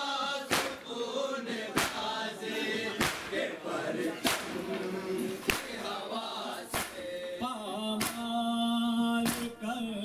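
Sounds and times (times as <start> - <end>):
men chanting together: 0.0 - 10.0
chest beating slaps: 0.5 - 0.9, 1.7 - 2.2, 2.9 - 3.4, 4.2 - 4.7, 5.4 - 5.8, 6.7 - 7.1, 8.0 - 8.4, 9.2 - 9.6.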